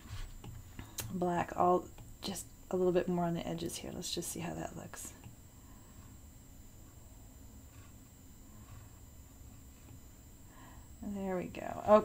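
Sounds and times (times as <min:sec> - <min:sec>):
stylus strokes on glass screen: 0:00.0 - 0:11.0.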